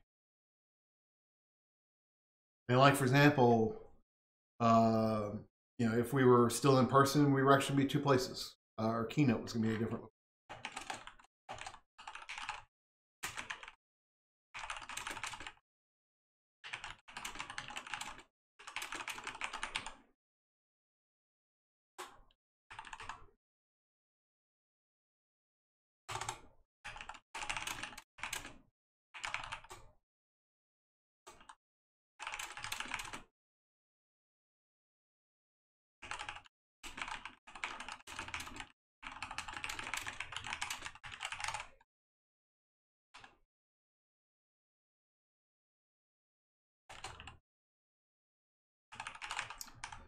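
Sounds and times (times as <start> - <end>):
computer keyboard typing: 10.5 - 13.8, 14.6 - 15.6, 16.6 - 20.0, 22.0 - 23.2, 26.1 - 28.6, 29.2 - 29.9, 32.2 - 33.3, 36.0 - 41.8, 46.9 - 47.4, 48.9 - 50.0.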